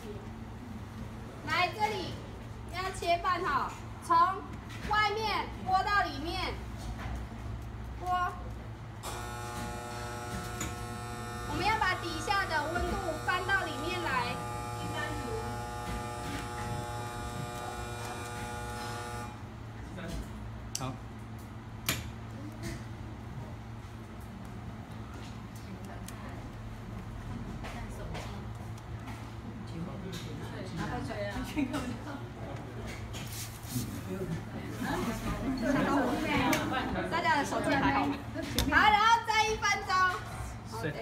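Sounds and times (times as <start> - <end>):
electric buzz: 9.0 - 19.5.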